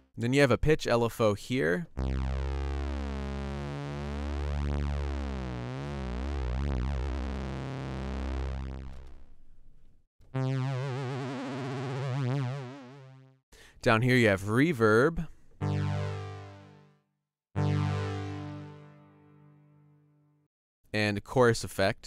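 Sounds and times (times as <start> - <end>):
synthesizer low note: 1.9 - 9.4, 10.4 - 13.3, 15.6 - 17.0, 17.6 - 20.4
synthesizer note with vibrato: 2.0 - 9.2, 10.4 - 13.3, 15.6 - 17.0, 17.6 - 20.2.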